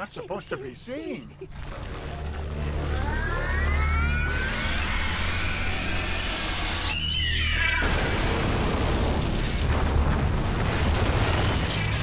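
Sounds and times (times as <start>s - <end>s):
rising whines: 1.5s - 9.6s
rush of noise climbing in pitch: 1.7s - 8.6s.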